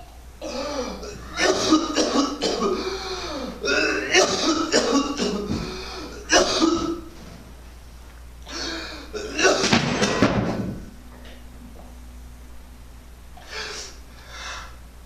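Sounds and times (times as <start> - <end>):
man coughing: 0.4 - 7.1, 8.5 - 10.6.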